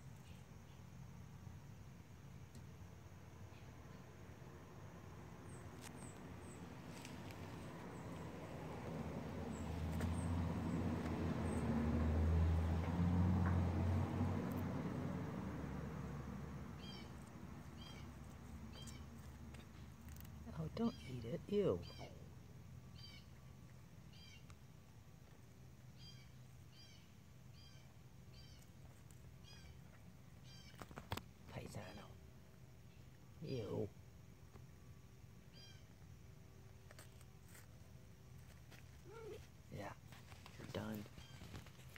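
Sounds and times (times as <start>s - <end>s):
small bird chirping: 5.4s - 11.7s, 16.7s - 34.0s, 35.4s - 37.8s, 38.4s - 41.9s.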